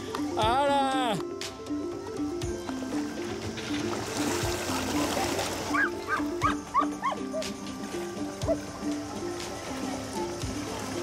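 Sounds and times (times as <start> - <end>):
background music: 0.0 - 11.0
water splashing: 2.7 - 11.0.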